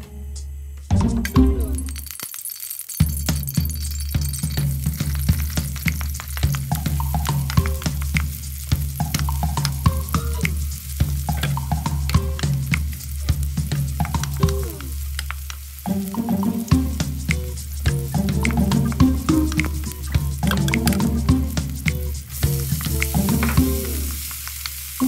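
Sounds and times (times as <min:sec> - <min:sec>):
onion sizzling in hot oil: 0:01.8 - 0:25.0.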